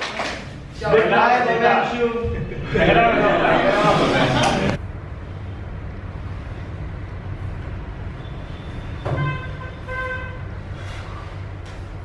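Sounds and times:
steady low hum: 0:00.5 - 0:12.0
vehicle horn tooting: 0:09.0 - 0:10.5.

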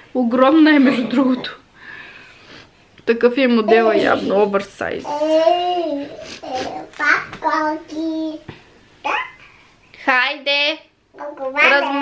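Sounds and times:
small child vocalizing: 0:05.1 - 0:08.4, 0:09.0 - 0:09.4, 0:11.2 - 0:12.0.

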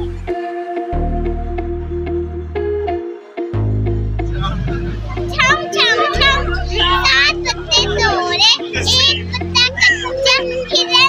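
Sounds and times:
loud music with strong bass: 0:00.0 - 0:11.0
child talking: 0:05.1 - 0:11.0.

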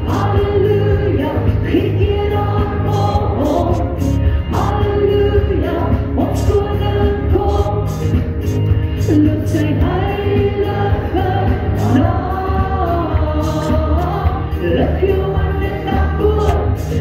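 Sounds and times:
woman singing gospel song: 0:00.0 - 0:08.0, 0:09.0 - 0:17.0
bass line: 0:00.0 - 0:17.0.

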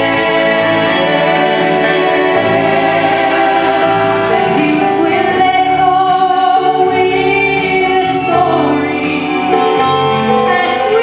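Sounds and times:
woman and man singing in harmony: 0:00.0 - 0:11.0.

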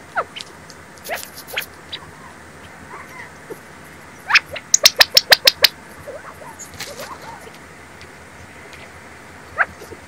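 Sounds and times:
wild birds calling: 0:00.0 - 0:10.0
sharp bird chips: 0:00.2 - 0:02.1, 0:03.0 - 0:07.5.

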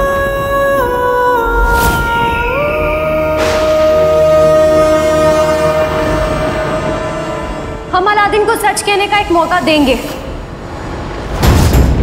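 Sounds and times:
held orchestral chord: 0:03.1 - 0:09.6.

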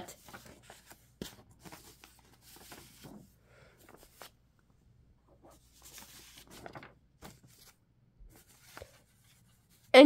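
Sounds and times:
paper photos rustling: 0:00.1 - 0:04.4, 0:05.2 - 0:09.9.

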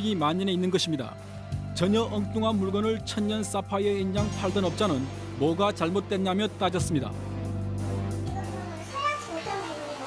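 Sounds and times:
background music low chord: 0:00.0 - 0:09.1.

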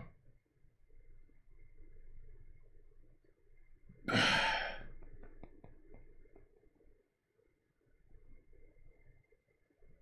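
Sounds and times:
man sighing heavily: 0:04.1 - 0:04.8.

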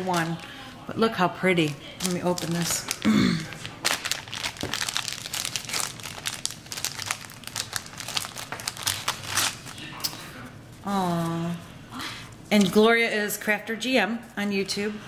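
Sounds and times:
plastic bag crinkling: 0:00.0 - 0:00.8, 0:01.4 - 0:10.2
person clearing throat: 0:03.0 - 0:03.6.

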